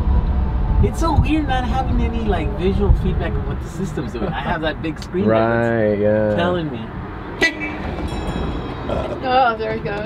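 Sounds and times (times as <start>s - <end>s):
vehicle road rumble: 0.0s - 10.0s.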